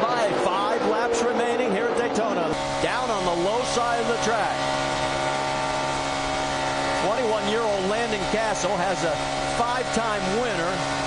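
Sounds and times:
race car engine drone: 0.0 - 11.0.

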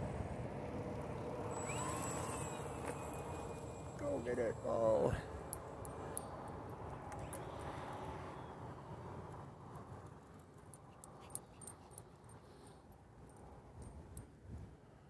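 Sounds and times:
model airplane motor and propeller hum: 0.2 - 8.5.

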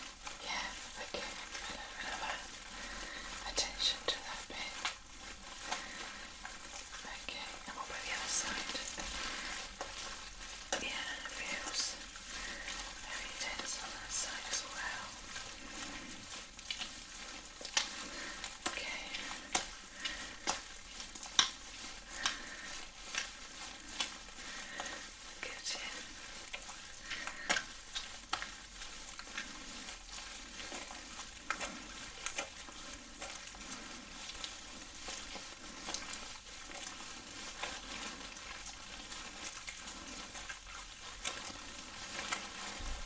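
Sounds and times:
gloved hands rubbing wetly: 0.0 - 43.0
plastic apron crinkling: 0.0 - 43.0.

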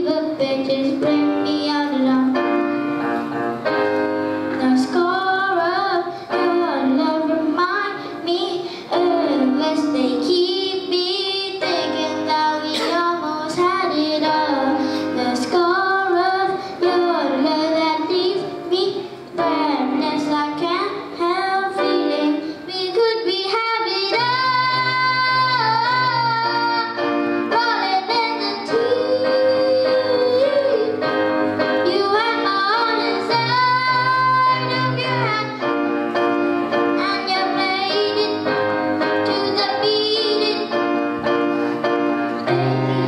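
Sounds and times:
boy singing pop ballad: 0.0 - 2.6, 4.6 - 31.2, 31.8 - 35.7, 37.0 - 40.8
grand piano: 0.0 - 43.0.

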